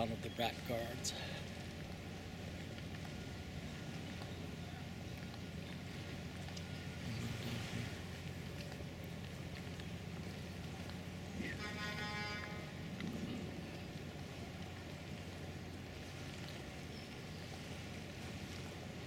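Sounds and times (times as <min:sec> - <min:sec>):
low rumble and hiss: 0:00.0 - 0:19.0.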